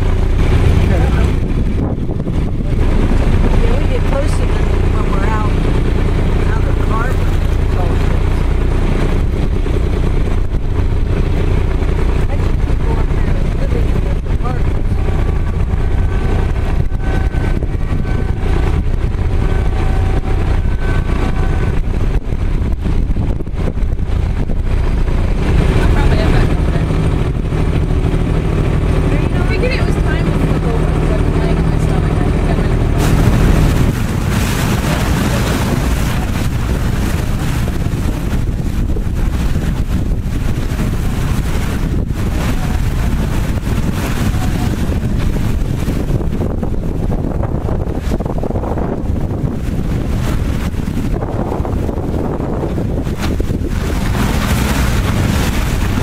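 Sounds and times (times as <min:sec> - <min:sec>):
boat engine rumbling: 0:00.0 - 0:56.0.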